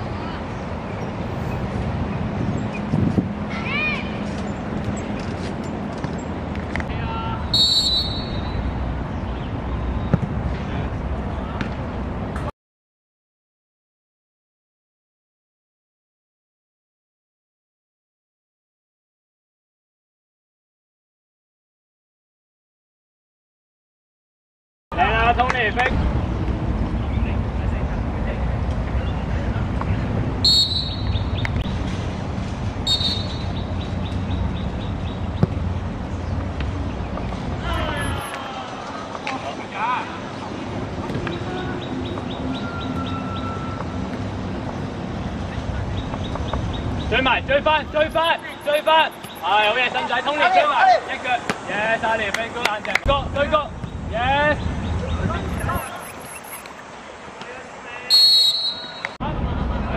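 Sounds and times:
steady background noise: 0:00.0 - 0:12.5, 0:24.9 - 0:59.9
faint distant shouts: 0:06.9 - 0:08.6, 0:37.6 - 0:40.2
referee's whistle blast: 0:07.5 - 0:08.6, 0:30.4 - 0:31.1, 0:32.9 - 0:33.4, 0:58.1 - 0:59.2
distant voices: 0:24.9 - 0:59.9
ball kicked thud: 0:35.4 - 0:35.6.

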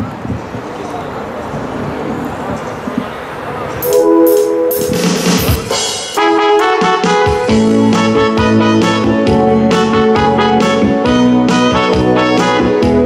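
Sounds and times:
electronic keyboard chords: 0:03.8 - 0:13.0.

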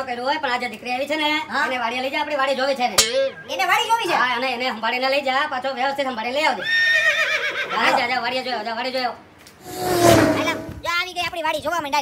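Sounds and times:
horse whinnying: 0:06.6 - 0:08.0
people talking: 0:10.4 - 0:12.0.

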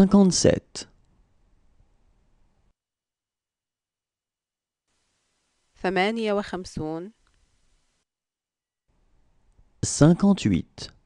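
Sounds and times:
person speaking: 0:00.0 - 0:01.0, 0:09.8 - 0:11.0
faint hiss: 0:04.9 - 0:08.1.

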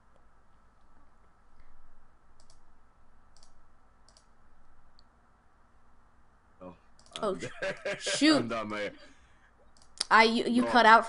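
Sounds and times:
faint sharp clicks: 0:02.4 - 0:02.6, 0:03.3 - 0:04.3.

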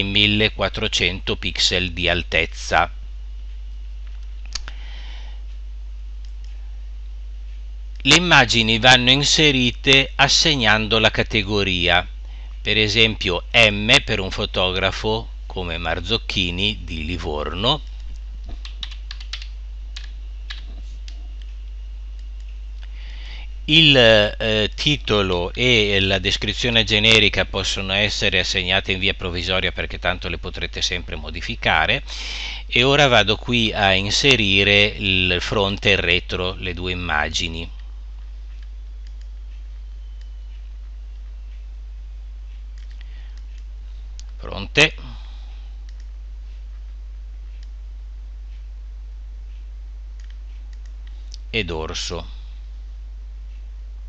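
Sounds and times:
steady low hum: 0:00.0 - 0:54.0
faint mouse clicks: 0:38.5 - 0:40.6, 0:42.8 - 0:44.4, 0:45.8 - 0:46.1, 0:49.5 - 0:51.4.

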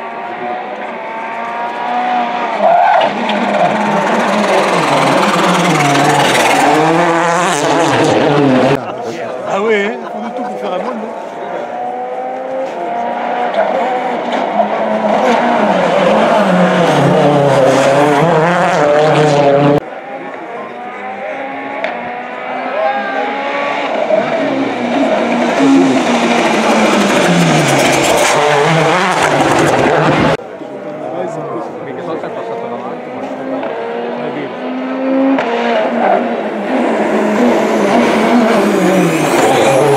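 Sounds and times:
rally car engines passing: 0:00.0 - 0:39.9.

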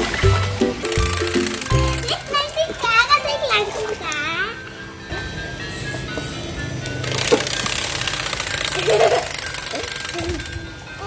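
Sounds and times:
buzzing toy motor rattle: 0:00.0 - 0:02.8, 0:06.6 - 0:11.0
instrumental children's music: 0:00.0 - 0:11.0.

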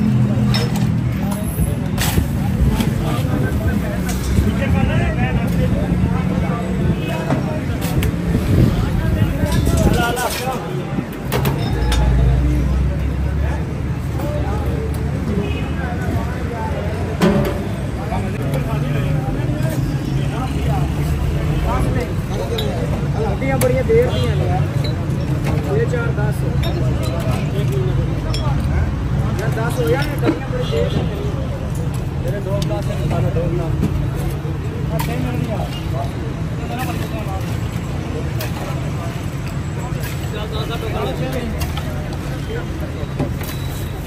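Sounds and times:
crowd chatter: 0:00.0 - 0:44.0
low traffic rumble: 0:00.0 - 0:44.0
people talking: 0:00.0 - 0:44.0.

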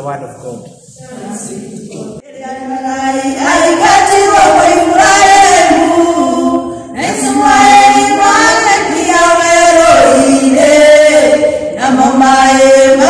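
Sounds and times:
voices singing a church song: 0:00.0 - 0:13.0.

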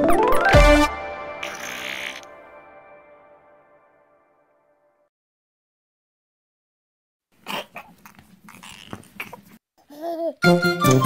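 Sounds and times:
cartoon toddler whimpering: 0:07.5 - 0:10.4.

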